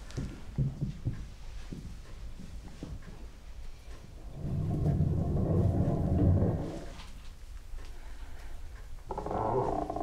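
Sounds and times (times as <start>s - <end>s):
low rumble: 4.1s - 7.2s.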